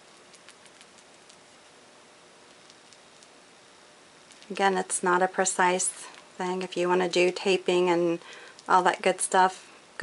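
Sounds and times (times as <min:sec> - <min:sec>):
brush dabbing paint on glass: 0:00.0 - 0:01.8
room hiss: 0:00.0 - 0:10.0.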